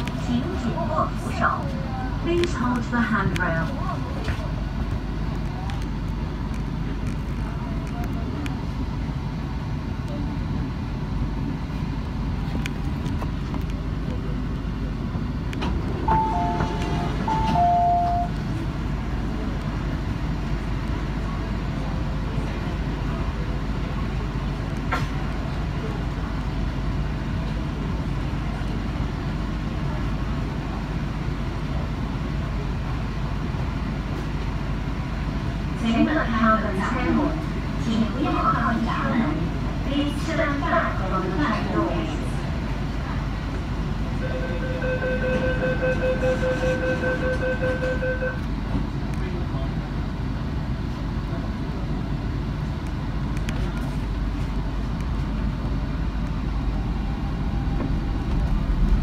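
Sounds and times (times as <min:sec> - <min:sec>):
train humming: 0:00.0 - 0:59.0.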